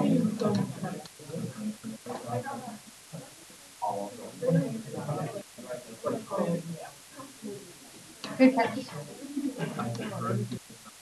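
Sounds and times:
person talking indistinctly: 8.2 - 10.7.

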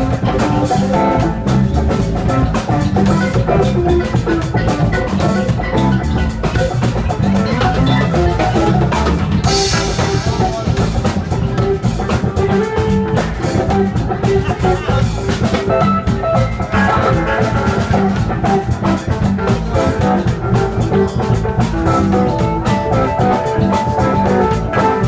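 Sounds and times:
drum kit steady beat: 0.0 - 25.0.

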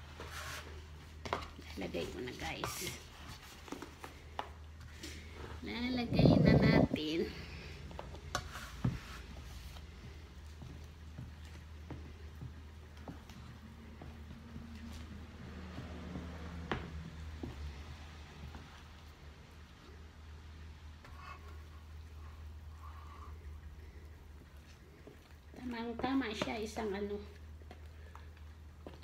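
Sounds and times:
spatula stirring batter: 0.0 - 29.0.

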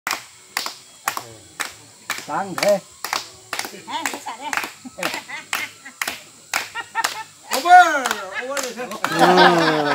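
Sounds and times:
people clapping slowly: 0.1 - 9.9.

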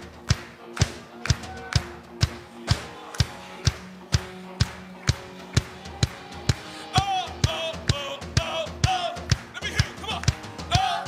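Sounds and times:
drums keeping steady beat: 0.0 - 11.0
electric guitar chords: 0.0 - 11.0.

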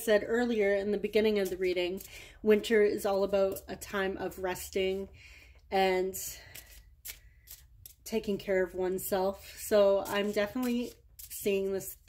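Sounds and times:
cards rustling: 6.4 - 8.1, 10.0 - 11.7.

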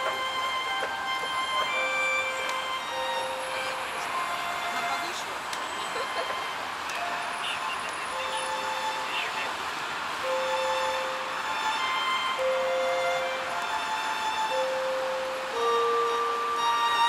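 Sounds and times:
background violin music: 0.0 - 17.0
traffic hiss of passing cars: 0.0 - 17.0.

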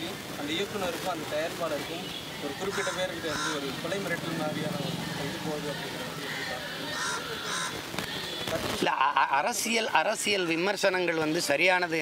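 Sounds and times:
low background voices: 0.0 - 12.0
bird cawing: 2.6 - 7.9.

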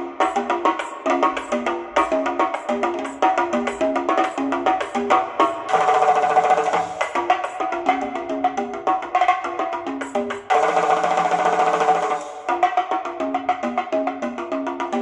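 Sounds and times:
instrumental music through speakers: 0.0 - 15.0.

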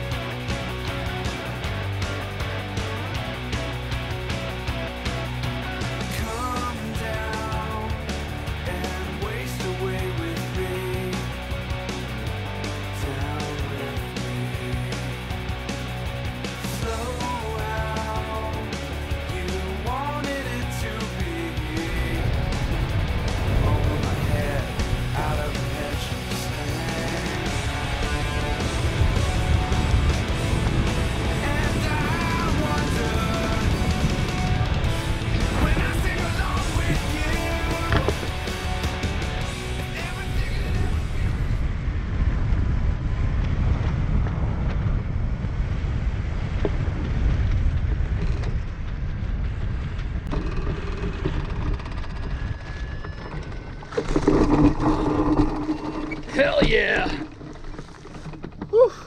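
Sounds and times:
background guitar music: 0.0 - 41.6
wind on microphone: 21.3 - 59.0.

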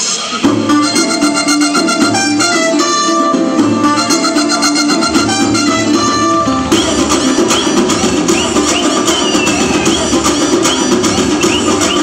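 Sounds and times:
dance song playing loudly: 0.0 - 12.0.

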